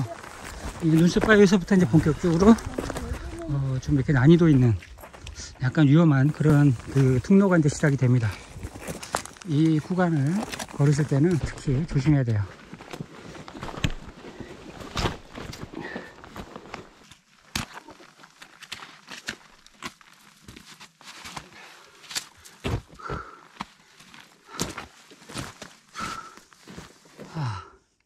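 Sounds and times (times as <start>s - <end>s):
crampon footsteps on snowy rock: 0.0s - 5.6s, 6.2s - 27.3s.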